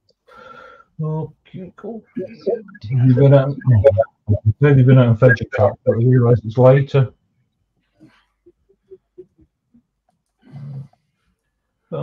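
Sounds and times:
brief low voiced sound: 0:02.2 - 0:06.2.

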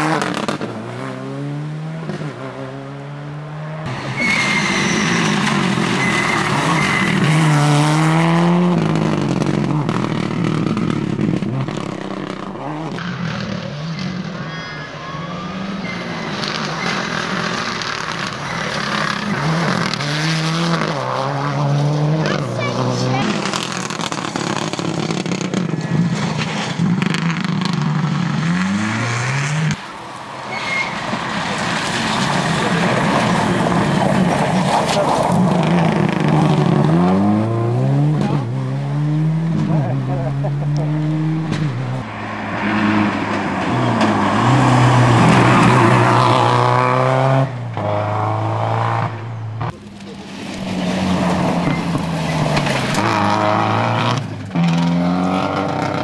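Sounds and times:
rally car engine revving: 0:00.0 - 0:14.4, 0:15.2 - 0:29.8, 0:31.4 - 0:56.0.

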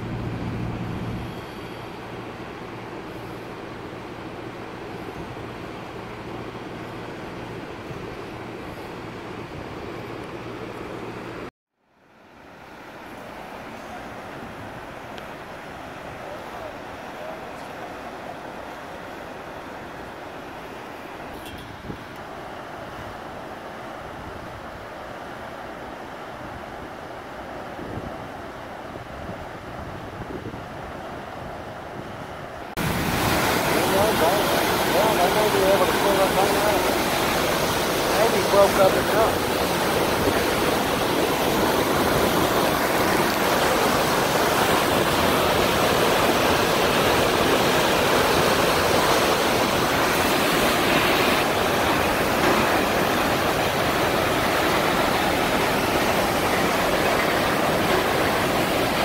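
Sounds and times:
river water rushing through gate: 0:00.0 - 0:59.0
wind: 0:00.0 - 0:59.0.

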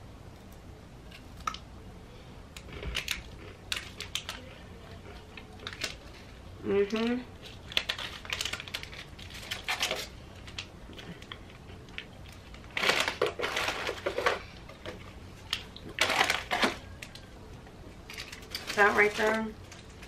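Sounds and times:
plastic wrappers crinkling: 0:02.7 - 0:17.3, 0:18.0 - 0:20.0.

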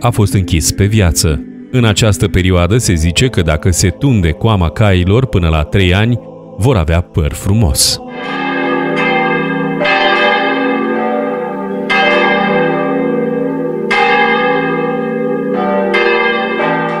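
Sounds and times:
church bells ringing: 0:00.0 - 0:17.0.

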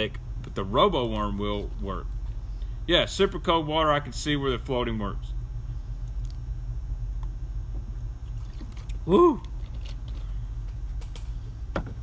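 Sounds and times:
low background hum: 0:00.0 - 0:12.0.

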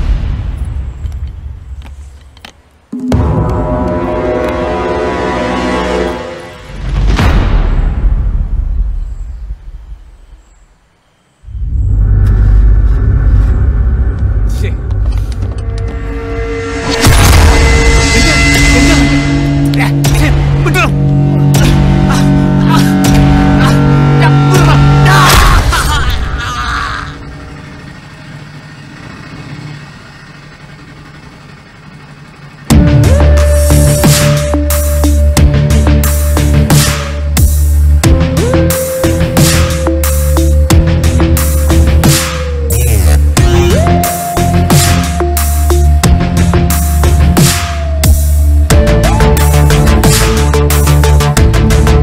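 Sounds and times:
car engine rumbling: 0:00.0 - 0:52.0
bass-heavy electronic music: 0:03.0 - 0:06.9, 0:11.5 - 0:27.8, 0:32.6 - 0:52.0
low boom: 0:03.0 - 0:10.0, 0:11.5 - 0:23.7.

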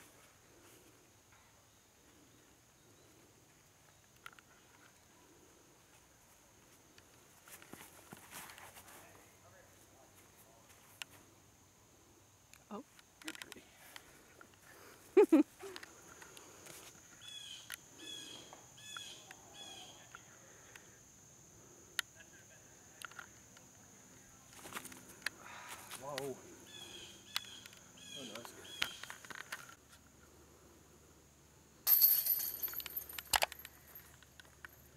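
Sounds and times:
faint scuffing footsteps: 0:06.7 - 0:09.2
metallic jangle of chains: 0:31.9 - 0:34.9.

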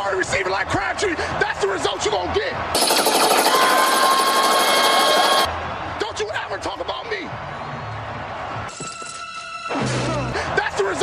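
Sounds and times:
machine-gun fire: 0:02.8 - 0:05.5.

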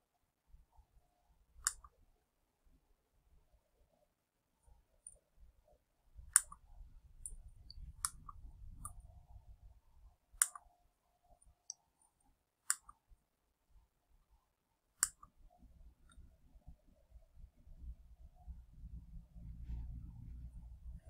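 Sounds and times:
computer mouse clicking: 0:01.6 - 0:02.0, 0:06.3 - 0:09.1, 0:10.4 - 0:10.7, 0:12.6 - 0:13.0, 0:15.0 - 0:15.4
faint low rumble: 0:05.0 - 0:11.7, 0:15.3 - 0:21.0.

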